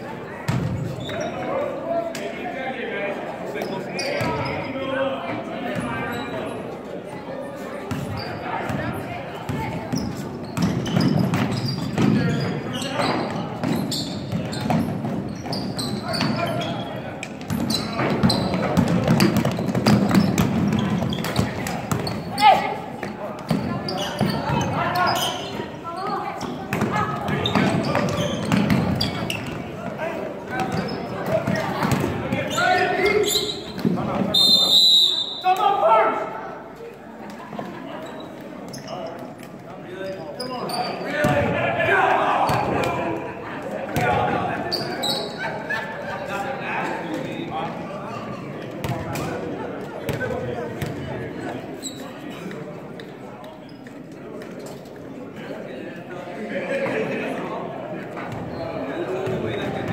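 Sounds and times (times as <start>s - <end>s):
voices in echoing gym: 0.0s - 59.9s.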